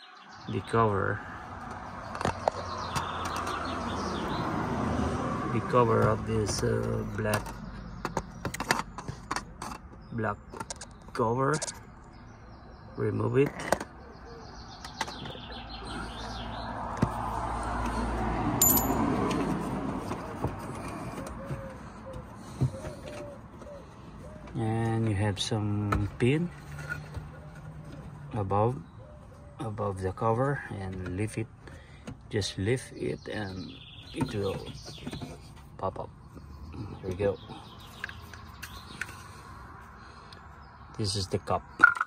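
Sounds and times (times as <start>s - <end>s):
small birds chirping: 0.0s - 18.8s, 20.1s - 41.8s.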